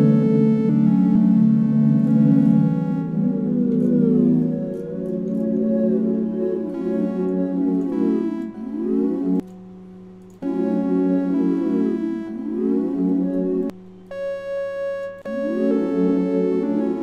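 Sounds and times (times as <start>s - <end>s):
held synth note: 0.0s - 9.5s, 10.4s - 17.0s
sweeping synth tones: 0.0s - 9.6s, 10.4s - 17.0s
synthesizer chord loop: 0.0s - 17.0s.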